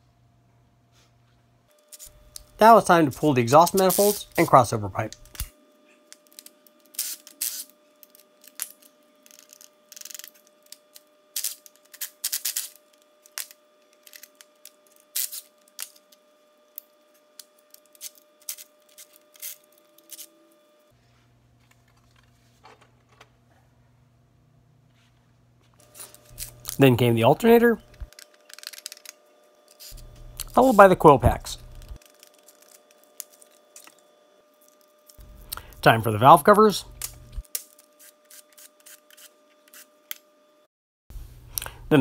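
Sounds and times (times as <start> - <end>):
low hum: 25.8 - 37.5.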